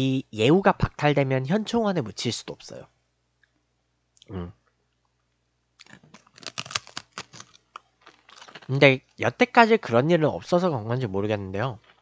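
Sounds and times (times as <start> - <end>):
man humming mm: 4.2 - 4.6
chewing crunchy food: 5.8 - 8.8, 11.8 - 12.0.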